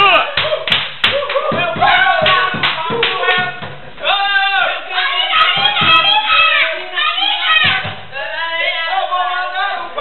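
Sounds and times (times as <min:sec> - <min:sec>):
rhythmic hand clapping: 0:00.2 - 0:03.8, 0:07.5 - 0:08.0.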